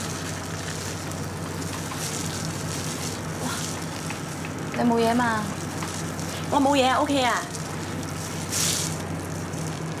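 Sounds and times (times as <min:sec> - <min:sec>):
low steady hum: 0:00.0 - 0:10.0
meat sizzling in a frying pan: 0:00.0 - 0:10.0.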